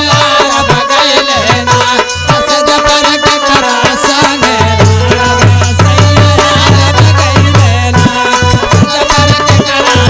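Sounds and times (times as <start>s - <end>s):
harmonium held notes: 0.0s - 10.0s.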